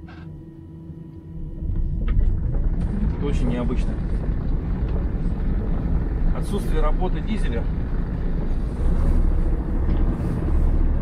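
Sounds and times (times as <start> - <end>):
vehicle drivetrain low rumble: 0.0 - 11.0.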